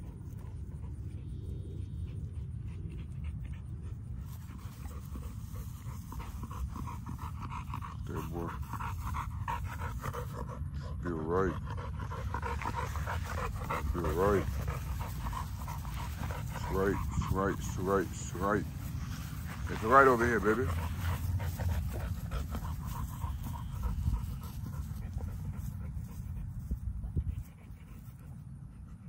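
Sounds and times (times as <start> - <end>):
dog panting hard: 0.0 - 29.0
steady low rumble: 0.0 - 29.0.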